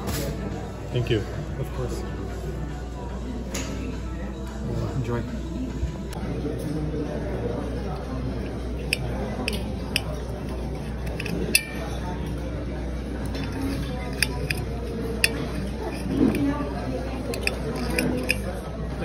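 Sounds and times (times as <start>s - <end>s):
murmur of voices: 0.0s - 19.0s
cutlery scraping ceramic bowl: 8.4s - 12.0s, 13.2s - 18.5s.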